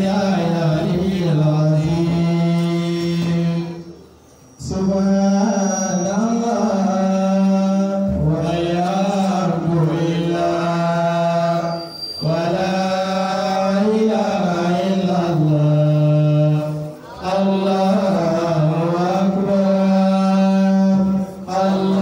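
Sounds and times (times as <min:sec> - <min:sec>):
man chanting melodically: 0:00.0 - 0:22.0.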